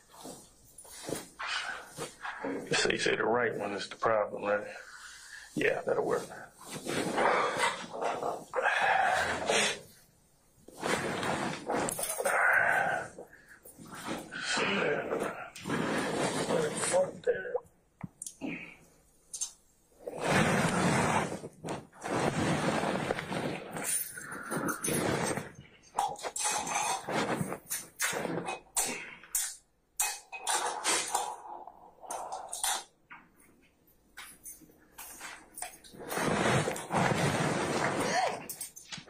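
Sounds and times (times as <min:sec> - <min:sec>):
rustling: 0:00.0 - 0:17.2, 0:20.0 - 0:28.6, 0:34.2 - 0:39.0.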